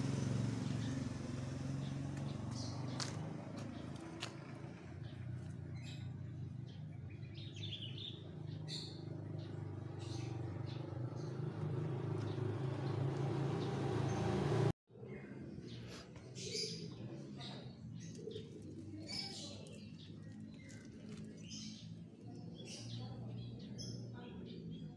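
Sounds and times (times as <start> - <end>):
small birds chirping: 0.0 - 24.9.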